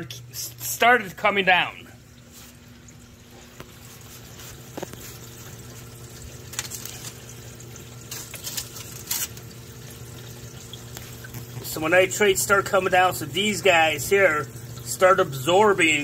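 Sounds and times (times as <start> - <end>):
low equipment hum: 0.0 - 16.0
water running and splashing: 0.1 - 16.0.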